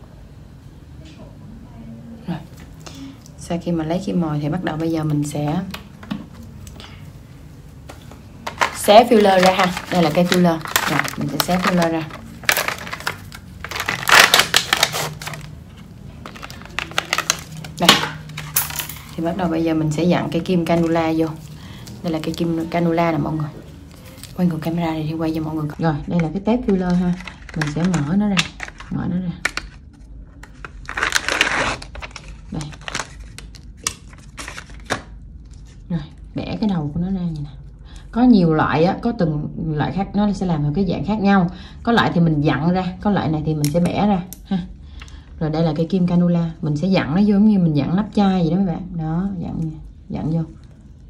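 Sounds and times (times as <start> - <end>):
packaging crinkling and tearing: 8.4 - 22.9, 23.6 - 24.8, 25.6 - 35.9
peel pouch ripping open: 9.2 - 15.6, 16.2 - 19.1, 30.4 - 35.8.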